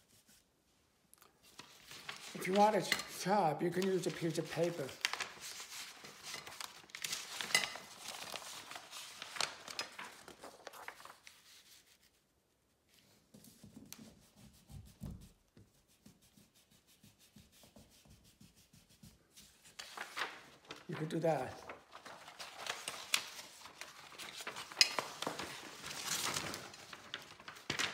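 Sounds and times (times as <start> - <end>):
paper rustling: 1.4 - 12.3, 17.3 - 27.9.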